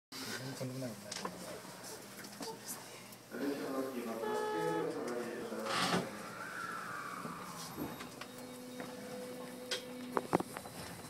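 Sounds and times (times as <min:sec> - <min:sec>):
electric train motor whine: 0:04.0 - 0:11.0.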